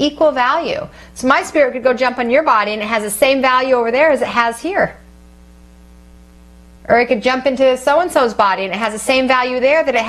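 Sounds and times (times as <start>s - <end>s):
woman's voice: 0.0s - 5.0s, 6.8s - 10.0s
electrical mains hum: 0.0s - 10.0s.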